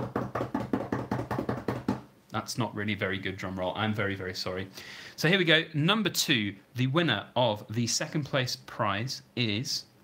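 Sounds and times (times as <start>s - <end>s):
hands drumming on a tabletop: 0.0s - 2.1s.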